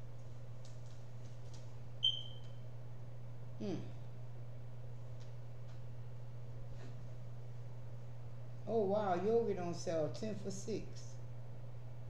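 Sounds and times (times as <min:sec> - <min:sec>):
steady low hum: 0:00.0 - 0:12.0
short high-pitched beep: 0:02.0 - 0:02.4.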